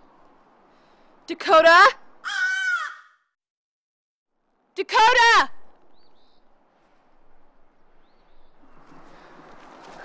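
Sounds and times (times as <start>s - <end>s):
crow cawing: 2.2s - 3.3s.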